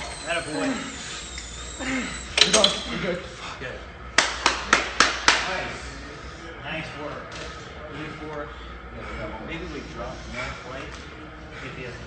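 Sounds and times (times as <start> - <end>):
hand claps: 4.2 - 5.5.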